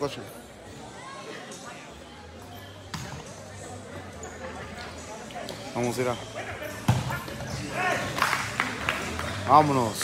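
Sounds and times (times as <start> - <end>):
volleyball bouncing on court floor: 2.9 - 3.3, 6.8 - 7.7.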